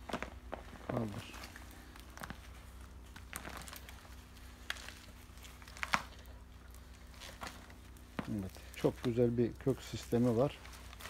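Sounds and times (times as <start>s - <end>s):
soil crumbling and roots tearing: 0.0s - 11.0s.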